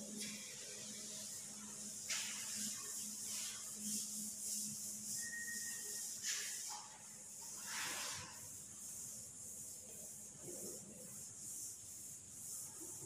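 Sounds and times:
duster wiping chalkboard: 0.0 - 13.0.

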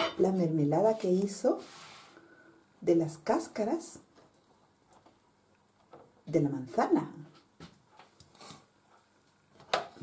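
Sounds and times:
faint soft rustle: 0.8 - 2.3.

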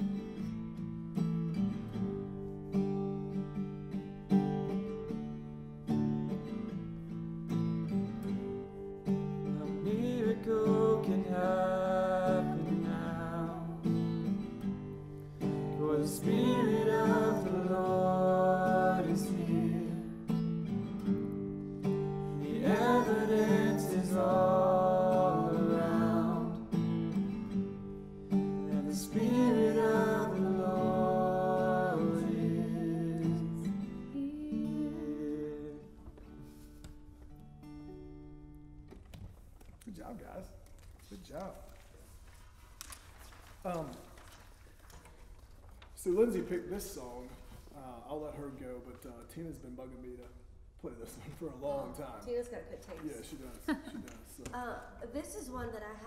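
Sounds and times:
acoustic guitar strummed chords: 0.0 - 36.6
man and woman singing: 9.6 - 14.1, 15.6 - 20.4, 22.3 - 26.8, 28.6 - 36.2.

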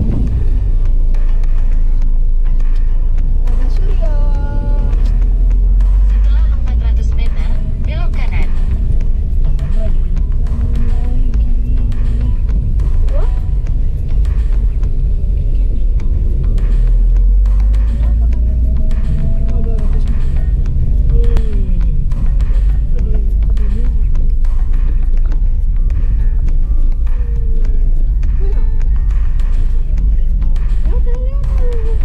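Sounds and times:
car engine and tyres rumble: 0.0 - 32.0
music with singing voice: 0.0 - 32.0.

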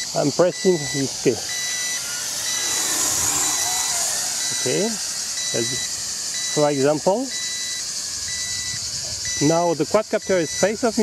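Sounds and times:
quadcopter propellers whirring: 0.0 - 11.0.

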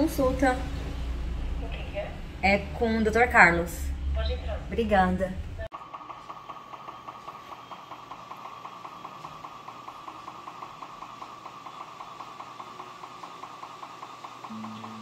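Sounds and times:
dental scanner pulsing hum: 5.7 - 15.0.

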